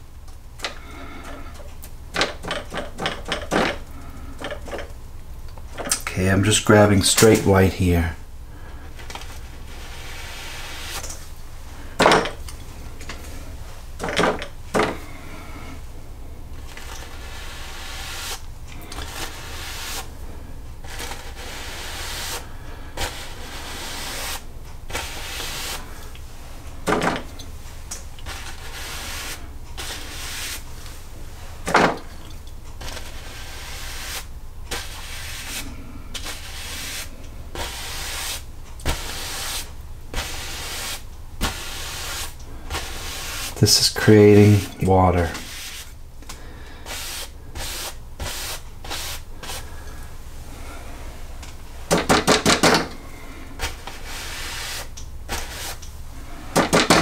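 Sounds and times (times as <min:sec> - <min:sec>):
brush scratching on canvas: 0:09.2 - 0:11.1, 0:16.6 - 0:20.1, 0:20.8 - 0:22.4, 0:23.0 - 0:25.9, 0:28.2 - 0:31.7, 0:32.8 - 0:46.0, 0:46.8 - 0:49.8, 0:53.6 - 0:55.8.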